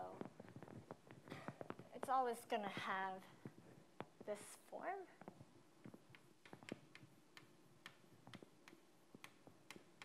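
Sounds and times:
chalk tapping on a blackboard: 5.8 - 10.0.

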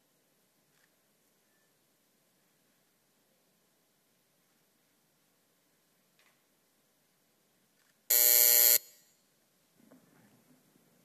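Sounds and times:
electronic buzzer: 8.1 - 9.0.

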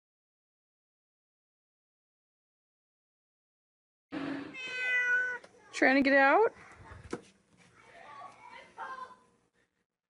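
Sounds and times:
cat meowing: 4.5 - 5.5.

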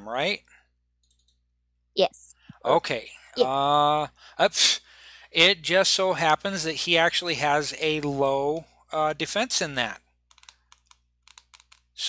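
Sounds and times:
typing on computer keyboard: 1.0 - 1.4, 10.3 - 12.0.

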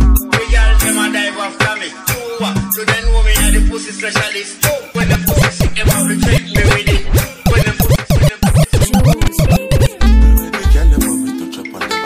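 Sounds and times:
reggaeton beat: 0.0 - 12.0
dj scratching: 5.0 - 10.0.

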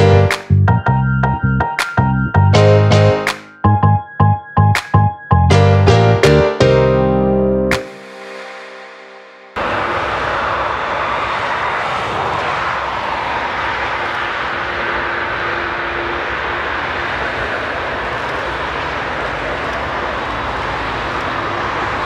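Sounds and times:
jet engines running: 7.7 - 22.0.

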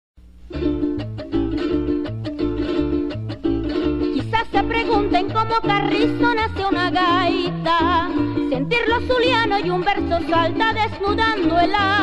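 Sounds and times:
cuatro strummed: 0.2 - 12.0
low bass line: 0.4 - 6.2.

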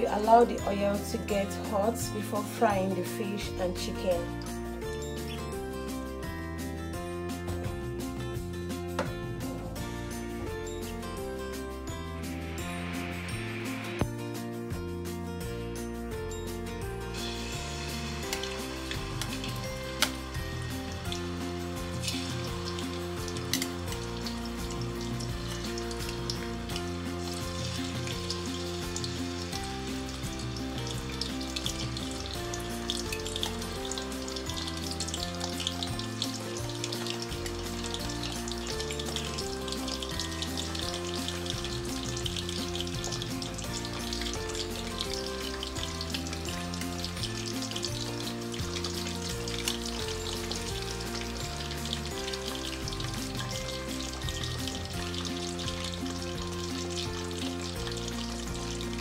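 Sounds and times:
soft background music: 0.0 - 59.0
fish sizzling in hot oil: 9.7 - 14.1, 17.0 - 59.0.

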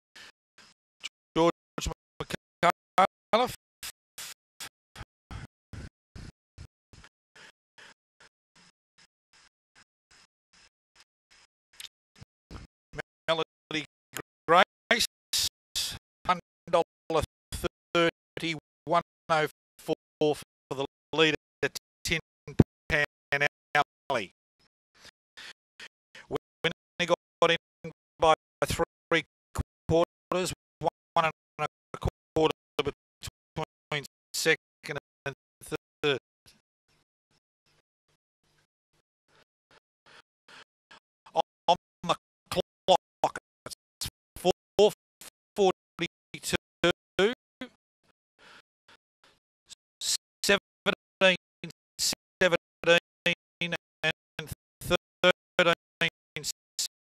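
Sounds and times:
race caller's voice: 1.4 - 3.6, 19.8 - 22.2.

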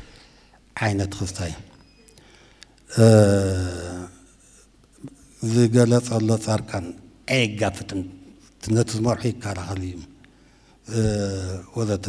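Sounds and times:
man speaking into a microphone: 0.8 - 1.9, 2.8 - 4.3, 5.0 - 10.2, 10.8 - 12.0.

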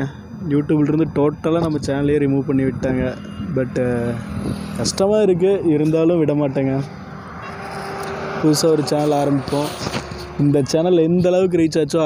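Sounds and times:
man speaking: 0.0 - 6.9, 8.4 - 9.8, 10.4 - 12.0.

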